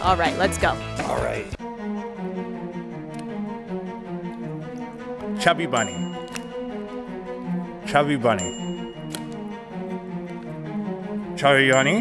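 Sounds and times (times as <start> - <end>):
low string-like music: 0.0 - 12.0.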